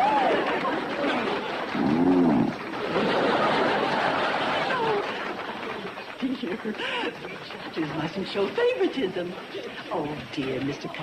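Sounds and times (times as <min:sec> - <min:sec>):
audience applause: 0:00.0 - 0:09.5
crowd voices: 0:00.0 - 0:11.0.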